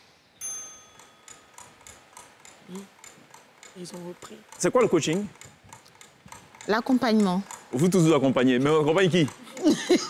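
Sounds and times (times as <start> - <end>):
bright chime: 0.4 - 1.5
clock ticking: 0.9 - 10.0.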